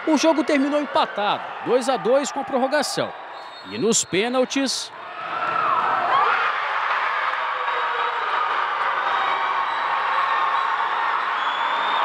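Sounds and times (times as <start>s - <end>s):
crowd cheering and screaming: 0.0s - 12.0s.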